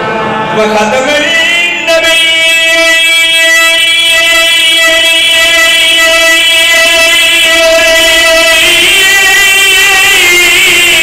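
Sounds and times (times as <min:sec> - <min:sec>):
man singing a long held note: 0:00.4 - 0:11.0.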